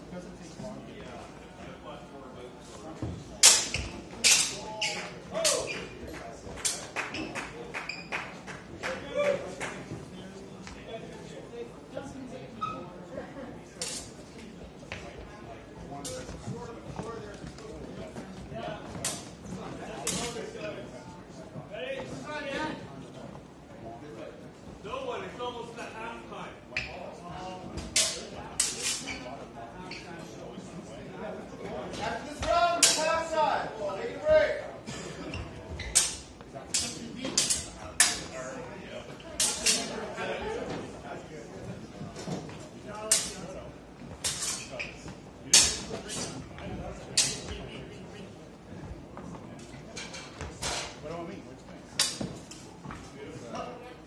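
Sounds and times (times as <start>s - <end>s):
murmured talk: 0.0s - 54.0s
longswords clashing: 3.4s - 4.6s, 28.0s - 29.1s
swords clashing: 3.4s - 4.7s, 27.9s - 29.2s, 32.8s - 33.1s, 36.0s - 38.3s, 39.4s - 39.9s, 43.1s - 43.4s, 44.2s - 44.7s, 45.5s - 46.0s.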